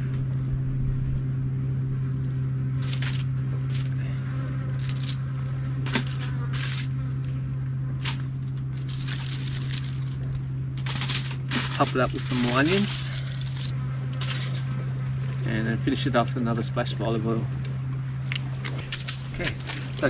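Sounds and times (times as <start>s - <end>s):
steady low hum: 0.0s - 20.0s
aluminium foil crinkling: 2.8s - 4.0s, 4.8s - 5.2s, 5.9s - 6.9s, 8.0s - 14.7s, 18.9s - 20.0s.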